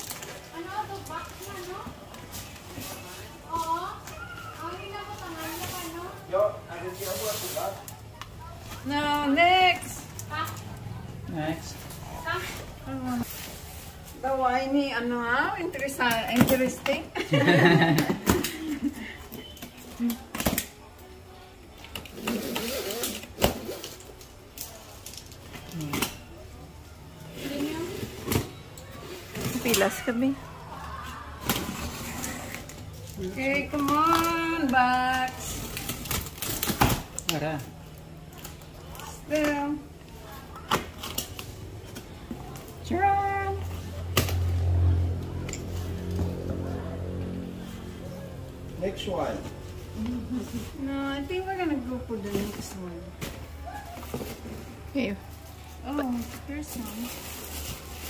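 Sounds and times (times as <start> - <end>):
packing tape being slit and torn: 21.8 - 26.2, 31.4 - 39.5, 40.6 - 42.0.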